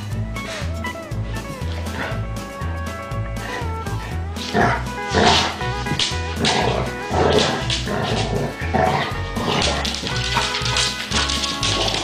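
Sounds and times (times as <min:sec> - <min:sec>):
background music with bass line: 0:00.0 - 0:12.0
dogs growling and barking: 0:00.4 - 0:12.0.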